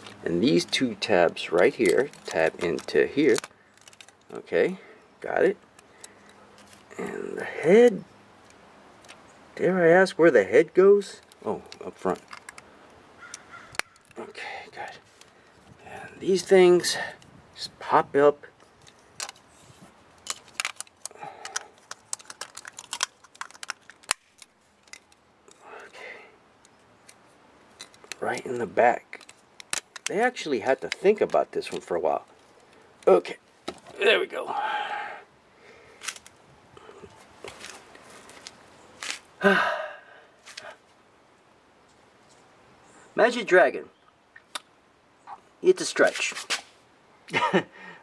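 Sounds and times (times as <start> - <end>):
plastic parts clicking into place: 1.5 - 4.3, 11.2 - 12.7, 18.8 - 19.4, 20.2 - 25.2, 29.2 - 30.2
man sighing: 34.4 - 35.3, 39.4 - 40.8.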